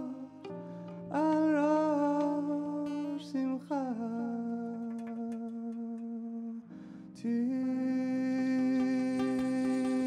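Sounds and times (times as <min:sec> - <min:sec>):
person humming held notes: 0:00.0 - 0:06.6.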